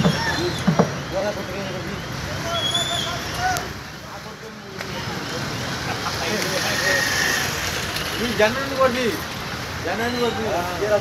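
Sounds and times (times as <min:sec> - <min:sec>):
crowd voices: 0:00.0 - 0:11.0
street vehicles: 0:00.0 - 0:11.0.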